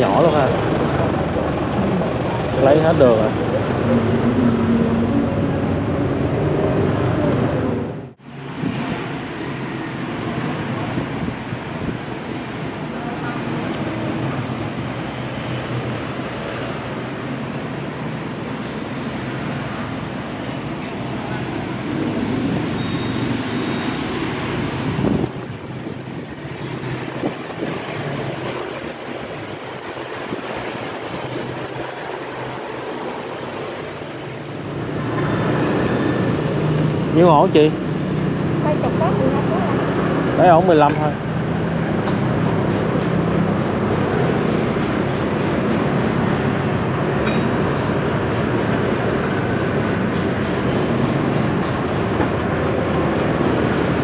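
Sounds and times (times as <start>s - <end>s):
motorbike traffic: 0.0s - 54.0s.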